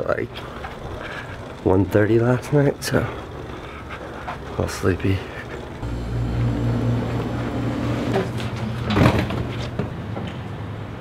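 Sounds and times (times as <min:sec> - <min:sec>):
elevator low hum: 0:00.0 - 0:10.8.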